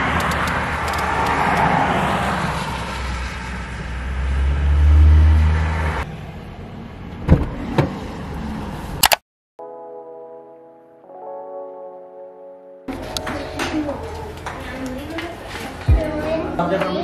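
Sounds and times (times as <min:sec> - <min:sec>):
passing vehicle rumble: 0:00.0 - 0:09.0
road noise inside car: 0:00.0 - 0:09.0.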